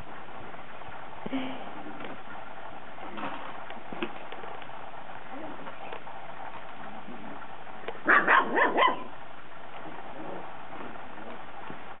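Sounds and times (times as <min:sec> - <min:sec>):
steady low hiss: 0:00.0 - 0:12.0
puppy yipping: 0:08.1 - 0:09.1.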